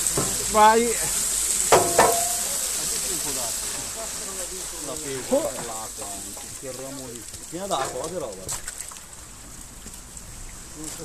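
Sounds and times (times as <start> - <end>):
stream water rushing and splashing: 0.0 - 11.0.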